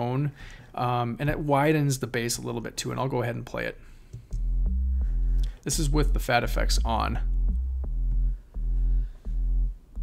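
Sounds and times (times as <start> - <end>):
distorted bass notes: 4.3 - 10.0.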